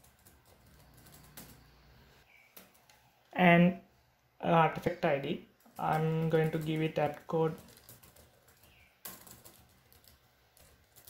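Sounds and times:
keyboard typing: 0.0s - 1.8s, 5.8s - 11.0s.

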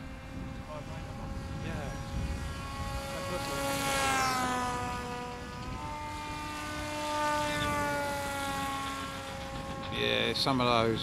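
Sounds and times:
electric motor and propeller whine: 0.0s - 11.0s.

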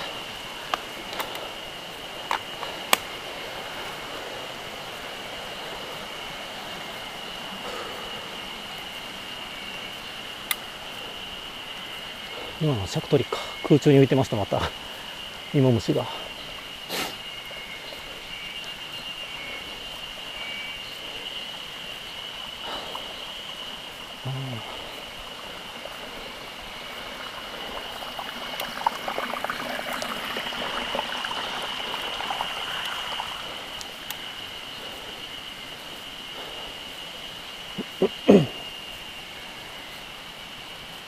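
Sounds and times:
bicycle rolling on rough road: 0.0s - 16.7s, 17.4s - 37.2s
high-pitched insect drone: 0.0s - 41.0s
crackling rushing sound: 21.8s - 37.1s.

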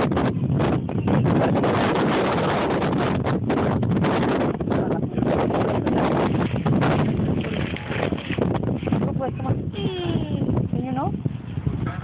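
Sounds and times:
small child whining: 9.8s - 10.5s.

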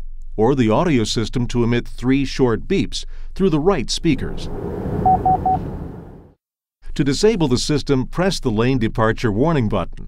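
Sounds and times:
low road noise in cabin: 4.0s - 6.3s
short warning beeps: 5.0s - 5.8s.

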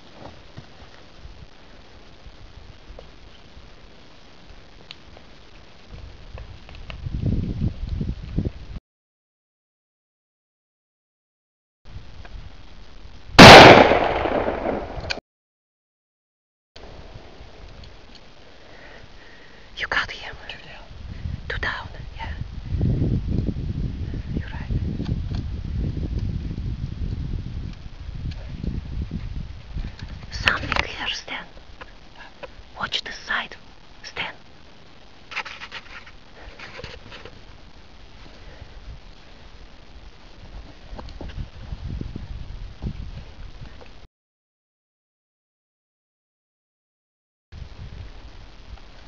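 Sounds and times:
loud rifle shot: 13.4s - 15.2s
person whispering: 19.8s - 20.9s, 21.5s - 22.4s, 24.4s - 24.7s, 30.3s - 31.6s, 32.2s - 34.4s.

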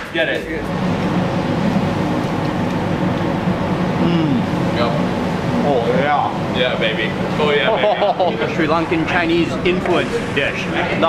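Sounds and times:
train passing: 0.0s - 11.0s.

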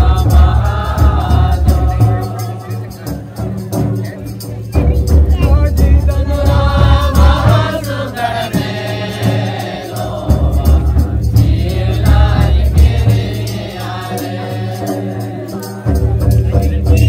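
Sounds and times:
group of voices singing: 0.0s - 17.0s.

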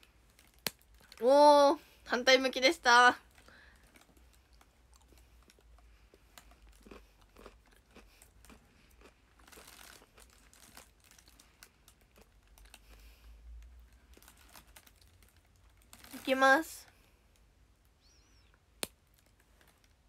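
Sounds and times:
chewing and crunching chocolate: 0.0s - 1.2s, 3.2s - 17.5s.

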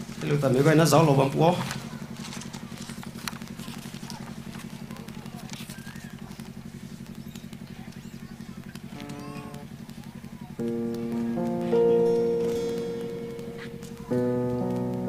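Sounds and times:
sound system buzz: 0.0s - 15.0s
amplified keyboard and guitar chords: 10.5s - 15.0s.

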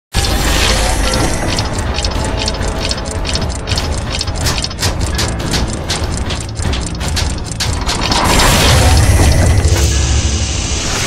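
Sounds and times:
metallic ratcheting clicks: 0.2s - 9.8s.

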